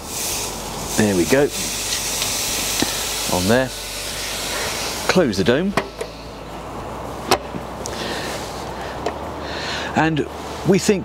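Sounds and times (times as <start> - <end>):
meat sizzling on a grill: 0.0 - 5.1.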